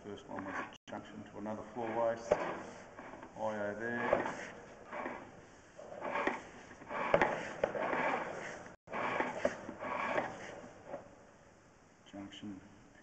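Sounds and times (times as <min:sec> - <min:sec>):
rod scraping and rattling in pipe: 0:01.8 - 0:11.1.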